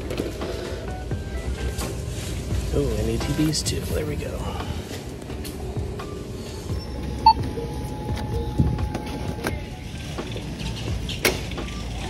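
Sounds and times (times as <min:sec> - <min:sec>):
shop background rumble: 0:00.0 - 0:12.0.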